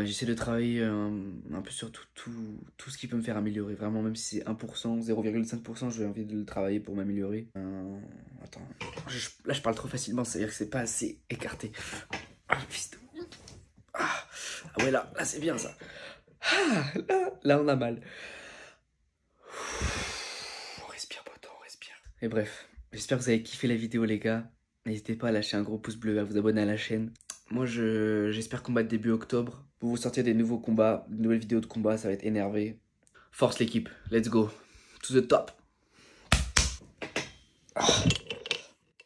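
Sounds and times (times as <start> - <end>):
man breathing heavily: 15.8 - 16.8, 18.0 - 18.8, 19.4 - 20.8.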